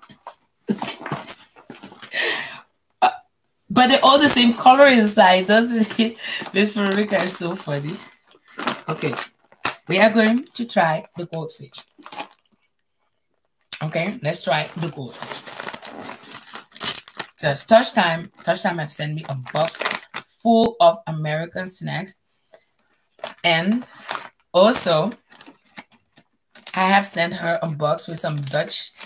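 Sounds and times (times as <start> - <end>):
woman laughing: 0.7 - 1.6
woman speaking: 3.7 - 9.3, 9.9 - 11.9, 13.8 - 15.4, 17.4 - 22.1, 23.4 - 23.9, 24.6 - 25.2, 26.8 - 29.0.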